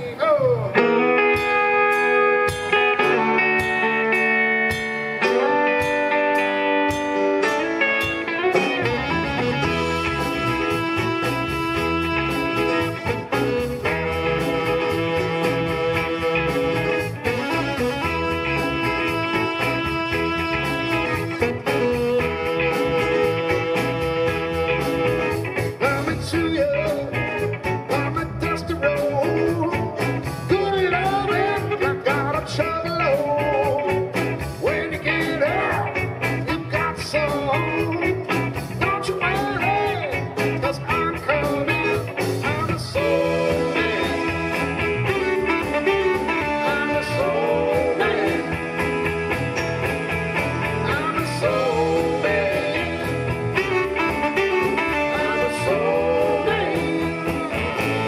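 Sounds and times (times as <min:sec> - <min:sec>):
live blues band playing: 0:00.0 - 0:58.0.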